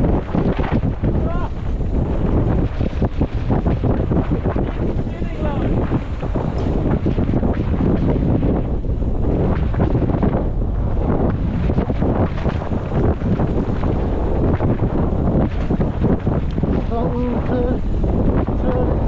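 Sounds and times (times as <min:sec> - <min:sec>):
bike rattling: 0:00.0 - 0:19.0
wind rushing over microphone: 0:00.0 - 0:19.0.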